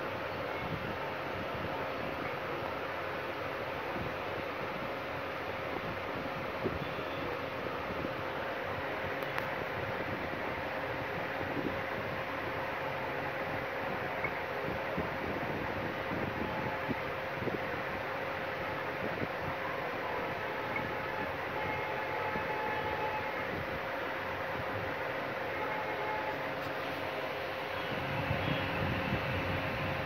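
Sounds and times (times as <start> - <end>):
mechanical hum and rush: 0.0 - 30.0.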